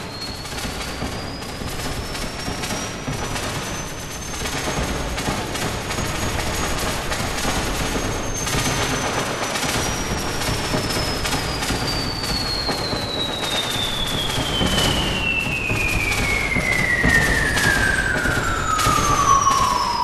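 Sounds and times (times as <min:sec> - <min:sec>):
high whistling falling tone: 0:00.0 - 0:05.4, 0:06.0 - 0:20.0
noisy crackle of sharp hits: 0:00.0 - 0:20.0.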